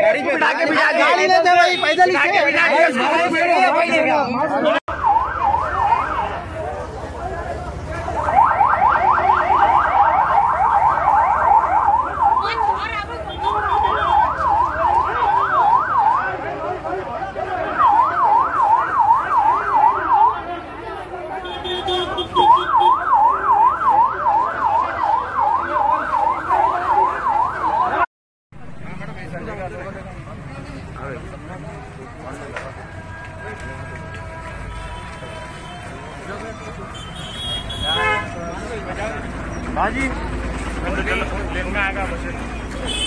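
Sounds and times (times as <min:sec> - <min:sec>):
crowd noise: 0:00.0 - 0:43.0
police siren yelping: 0:02.9 - 0:06.4, 0:08.1 - 0:16.5, 0:17.6 - 0:20.4, 0:22.3 - 0:28.1.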